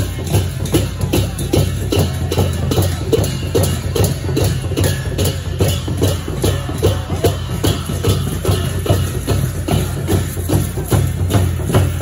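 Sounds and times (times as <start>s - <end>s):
cymbals striking: 0.0s - 12.0s
steady drum beat: 0.0s - 12.0s.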